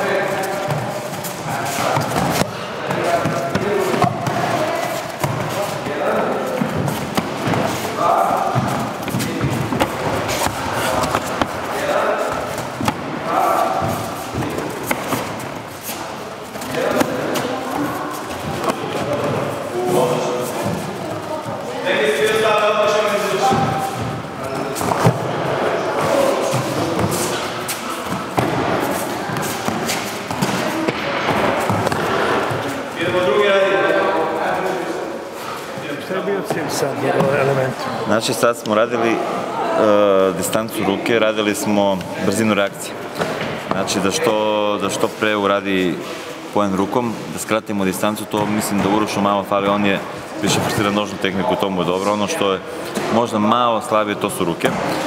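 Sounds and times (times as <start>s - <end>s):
voices: 0.0s - 55.0s.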